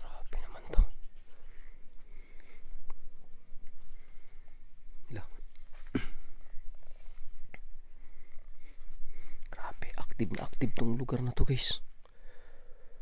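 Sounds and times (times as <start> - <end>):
night insect chorus: 0.0 - 13.0
man's low voice: 9.6 - 11.8.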